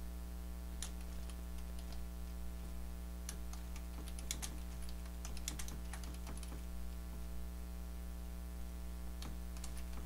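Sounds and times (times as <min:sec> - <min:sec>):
low electrical hum: 0:00.0 - 0:10.0
computer keyboard keys clicking: 0:00.8 - 0:02.0, 0:03.3 - 0:06.7, 0:09.2 - 0:10.0.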